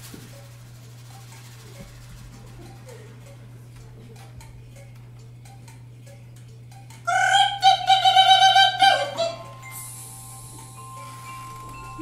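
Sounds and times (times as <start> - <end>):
steady low hum: 0.0 - 12.0
light percussive ticks with ring: 2.7 - 7.1.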